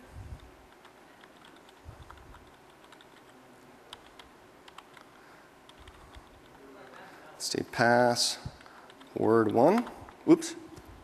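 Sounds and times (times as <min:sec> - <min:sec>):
faint keyboard typing: 0:00.3 - 0:07.0, 0:08.5 - 0:11.0.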